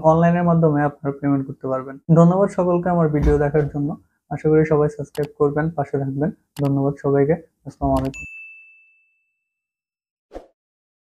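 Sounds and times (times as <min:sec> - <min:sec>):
bright bell ding: 0:08.0 - 0:09.5.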